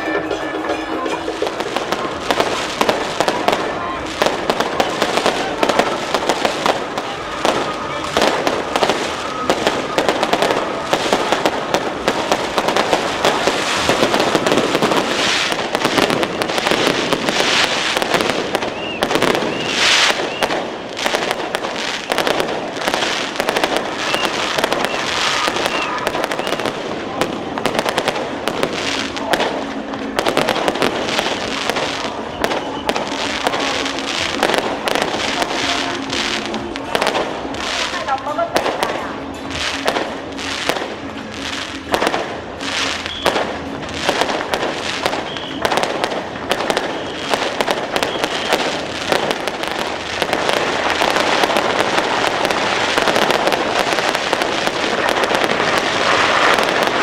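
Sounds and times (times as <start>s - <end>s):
voices: 0.0s - 21.0s, 21.7s - 43.8s
firecrackers crackling: 0.0s - 57.0s.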